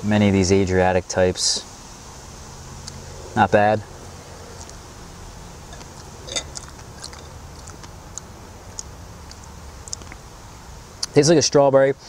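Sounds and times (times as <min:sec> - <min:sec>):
person chewing fruit: 0:05.8 - 0:10.2
wet mouth smack: 0:05.8 - 0:10.2.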